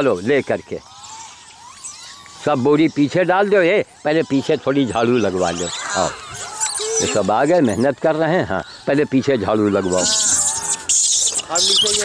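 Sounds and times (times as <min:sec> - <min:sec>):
monkeys squealing and chattering: 0:00.0 - 0:12.0.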